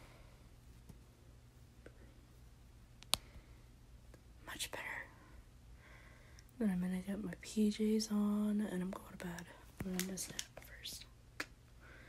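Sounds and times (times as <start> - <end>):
person whispering: 8.9 - 11.1.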